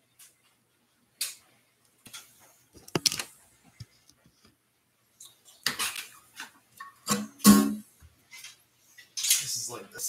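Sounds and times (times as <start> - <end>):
acoustic guitar strums: 7.0 - 7.8.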